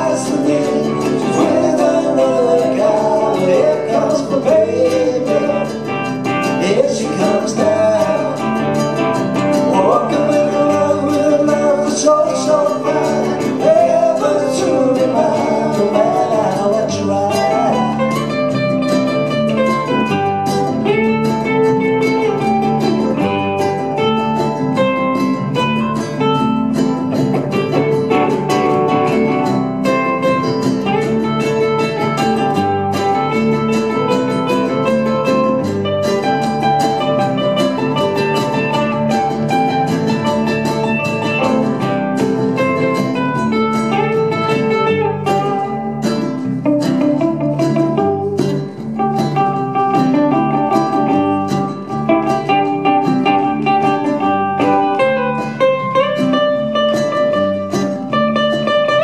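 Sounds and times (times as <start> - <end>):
men singing together: 0.0 - 5.8, 6.6 - 8.5, 9.7 - 17.9
ukuleles strummed and picked: 0.0 - 59.0.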